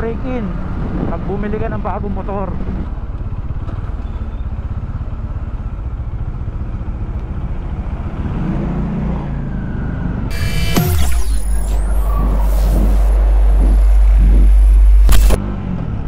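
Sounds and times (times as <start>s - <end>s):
music: 10.3s - 15.4s.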